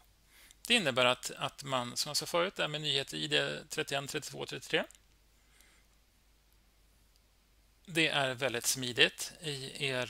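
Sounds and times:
faint low hum: 0.0s - 10.0s
man speaking: 0.6s - 5.0s, 7.9s - 10.0s.

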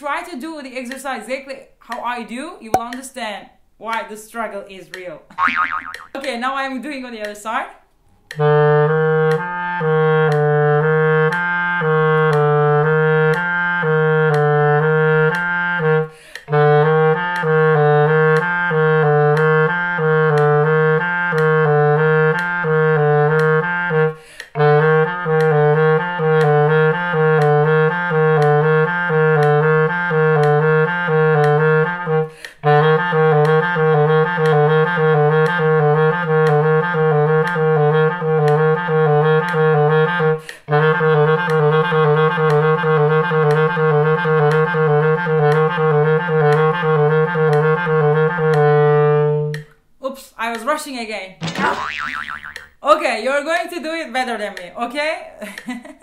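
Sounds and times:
clarinet playing low notes: 8.3s - 49.7s.

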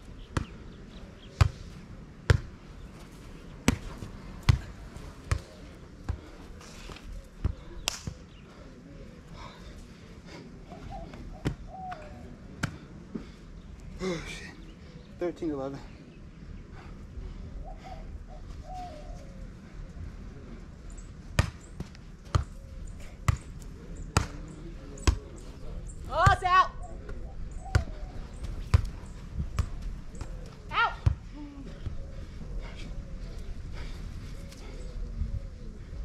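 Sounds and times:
hands slapping volleyball: 6.9s - 8.3s.

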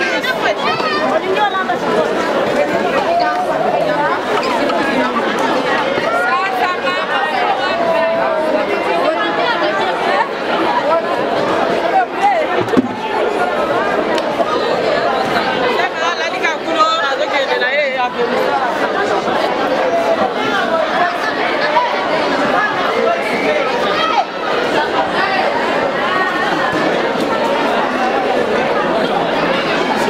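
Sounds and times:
crowd chatter: 0.0s - 30.0s.

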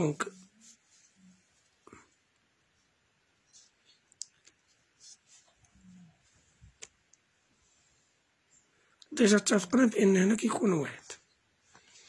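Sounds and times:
faint sharp clicks: 4.1s - 4.6s.

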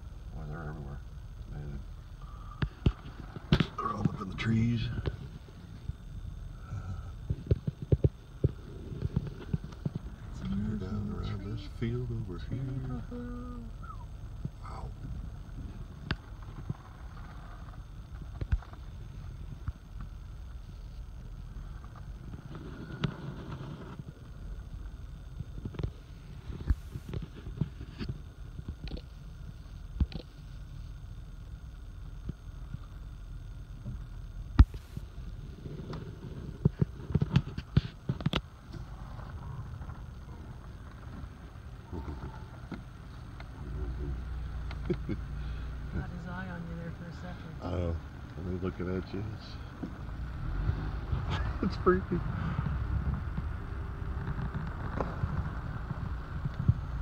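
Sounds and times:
vehicle idling rumble: 0.0s - 57.0s.

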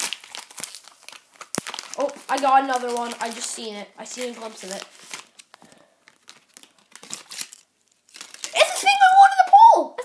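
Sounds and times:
wrapper crinkling and tearing: 0.0s - 9.6s.

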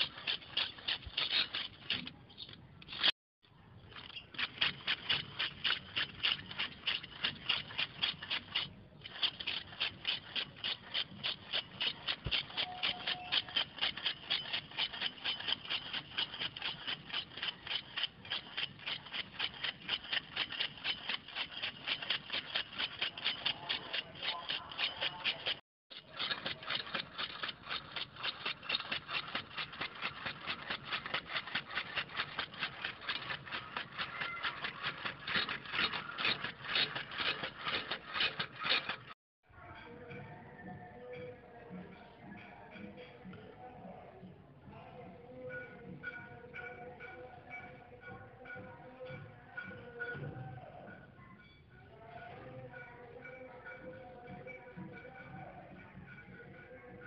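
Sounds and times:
rapid mechanical clicking: 0.0s - 3.2s, 3.8s - 39.2s.

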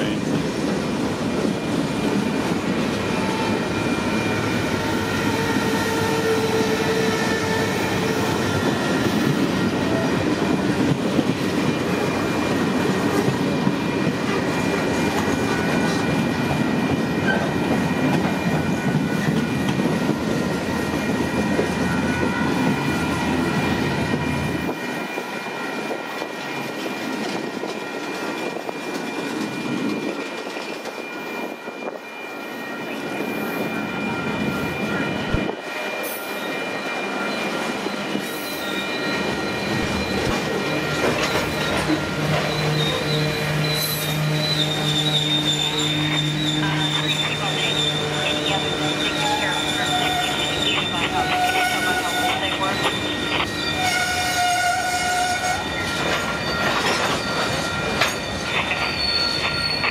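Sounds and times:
train wheels rumbling on rails: 0.0s - 59.9s
high wheel squeals: 31.0s - 59.9s.

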